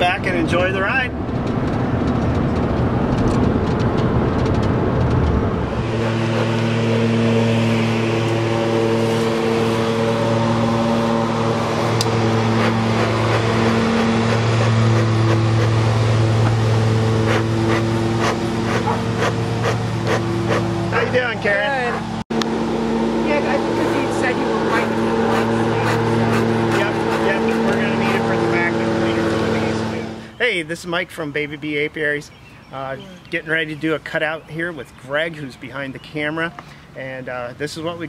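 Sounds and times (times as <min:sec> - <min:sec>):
road noise inside truck cab: 0:00.0 - 0:30.4
engine idling: 0:05.1 - 0:30.4.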